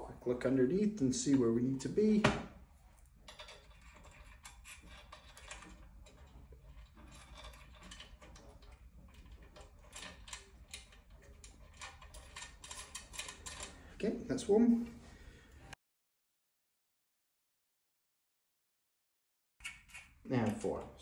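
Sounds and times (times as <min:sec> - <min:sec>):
allen key clicking on screws: 0:03.3 - 0:13.8.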